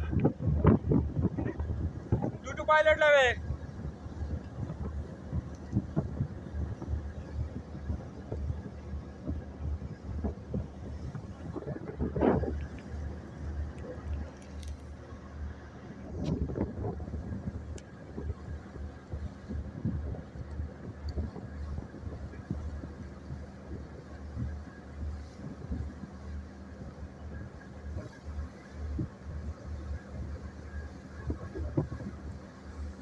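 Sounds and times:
boat engine rumble: 0.0 - 33.0
water splashing along hull: 0.0 - 33.0
wind buffeting microphone: 0.0 - 33.0.

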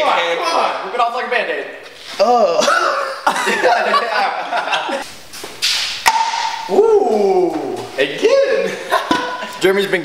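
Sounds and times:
young men laughing: 2.2 - 5.1, 7.5 - 9.8.

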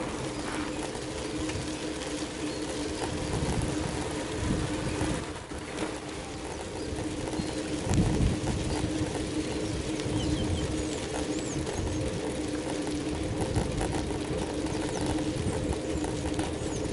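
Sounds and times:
wind rumbling on microphone: 0.0 - 16.9.

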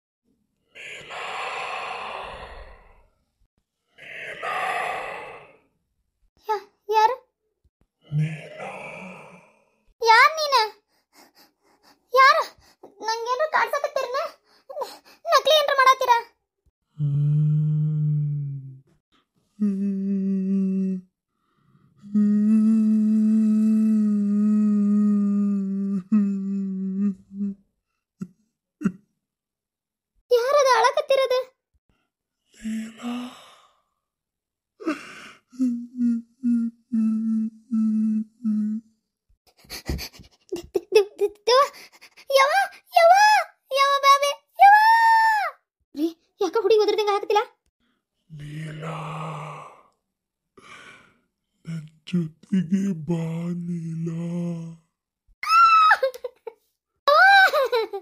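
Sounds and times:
person humming low note: 17.0 - 18.8, 19.6 - 21.1, 22.0 - 27.6, 35.6 - 38.8, 51.7 - 54.8
person breathing heavily in sleep: 32.6 - 34.0, 34.8 - 35.6, 50.6 - 51.3.

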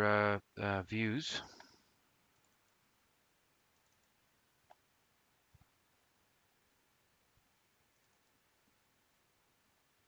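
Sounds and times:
computer mouse click: 2.3 - 2.8, 3.7 - 4.8, 7.9 - 8.4.

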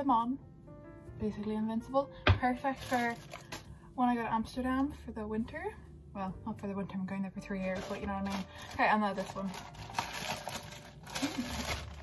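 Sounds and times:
plastic bag crinkling: 2.6 - 3.7, 7.6 - 12.0.

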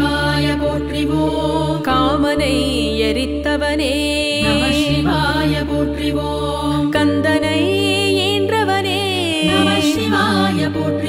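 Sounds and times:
low drone accompaniment: 0.0 - 8.5, 9.4 - 11.0
woman chanting a hymn: 4.2 - 5.7, 9.3 - 10.5.

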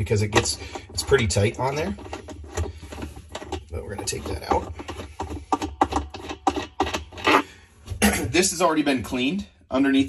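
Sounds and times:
nut rasping on thread: 0.0 - 7.6.

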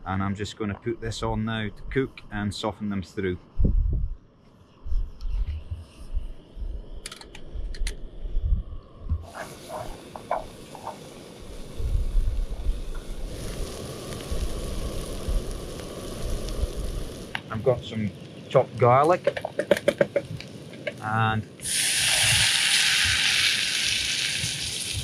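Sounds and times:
wind buffeting microphone: 3.4 - 4.2, 4.8 - 18.7
food sizzling in a pot: 9.2 - 17.5, 21.6 - 25.0.

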